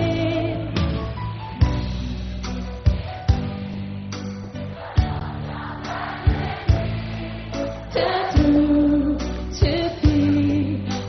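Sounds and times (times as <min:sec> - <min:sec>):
live pop band: 0:00.0 - 0:11.0.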